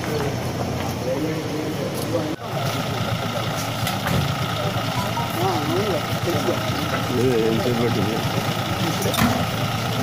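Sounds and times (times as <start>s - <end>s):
people's voices: 0.0s - 10.0s
vehicle engine idling: 0.0s - 10.0s.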